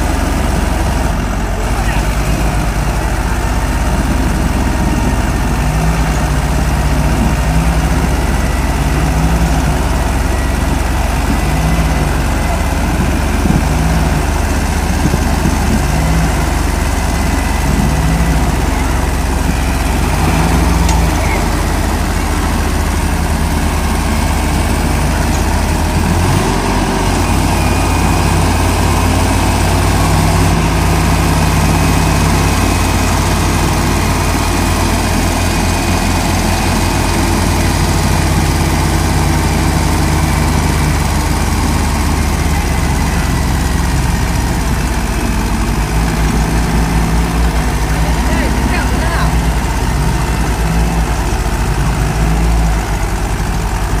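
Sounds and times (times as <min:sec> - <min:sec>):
tractor diesel engines under load: 0:00.0 - 0:54.0.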